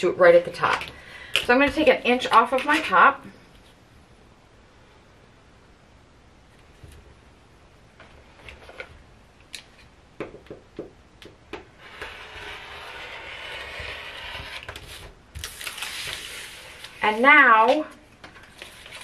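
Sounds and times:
rotary cutter scraping through paper: 11.8s - 15.1s
paper rustling: 14.8s - 19.0s.

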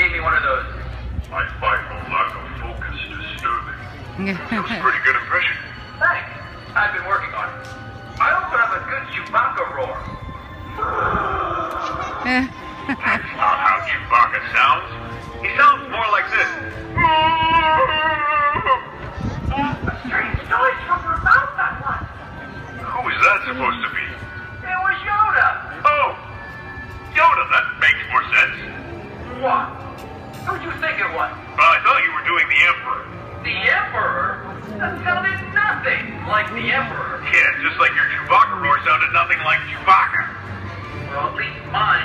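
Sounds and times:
music: 0.0s - 42.0s.

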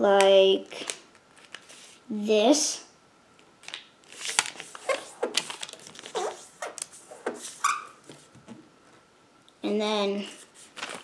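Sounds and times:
paper being folded and creased: 3.7s - 8.4s, 10.3s - 11.0s.

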